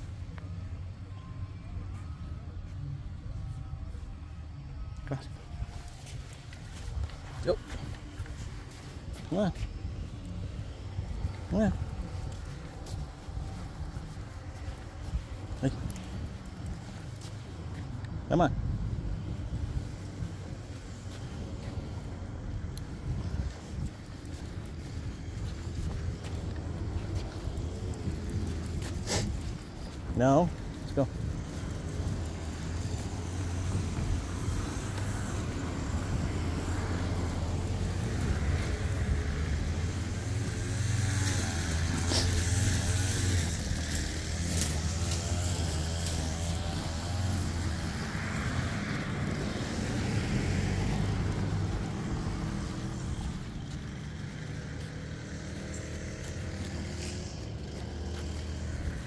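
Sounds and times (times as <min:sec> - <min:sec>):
motor vehicle humming: 0:00.0 - 0:59.0.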